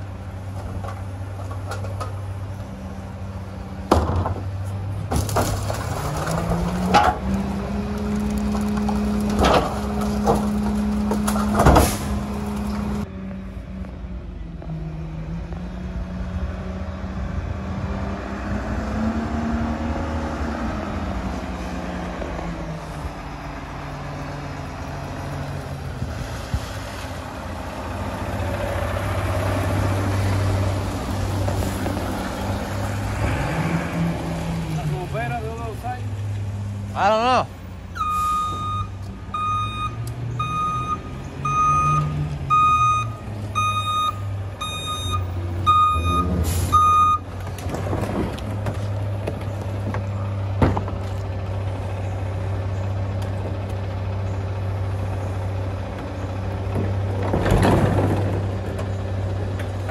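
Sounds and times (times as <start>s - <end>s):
garbage truck diesel engine: 0.0s - 59.9s
reverse alarm beeping: 38.0s - 47.2s.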